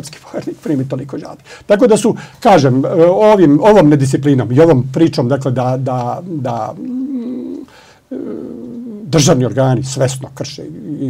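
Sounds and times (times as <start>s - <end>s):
short breath: 1.4s - 2.4s, 7.7s - 8.1s
man humming with closed lips: 6.2s - 9.1s.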